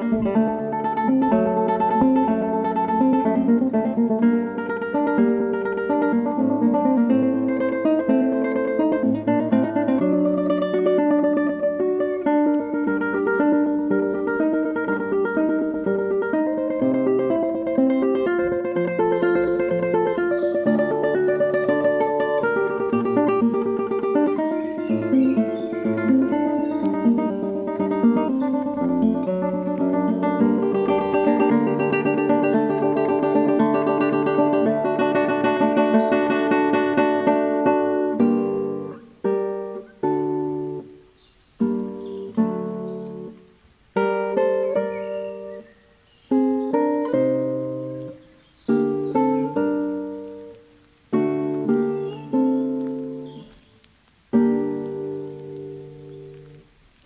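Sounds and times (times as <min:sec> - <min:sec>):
plucked guitar music: 0:00.0 - 0:57.0.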